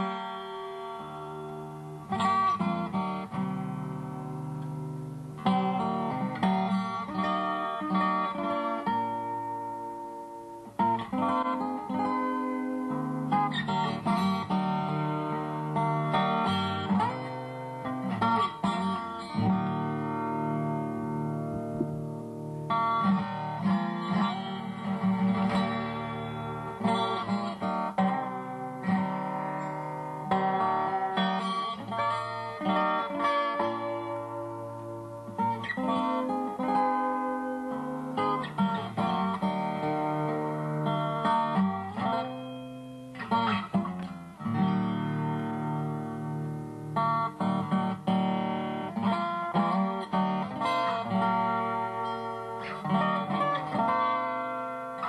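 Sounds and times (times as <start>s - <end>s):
fingerpicked acoustic guitar: 0.0s - 55.0s.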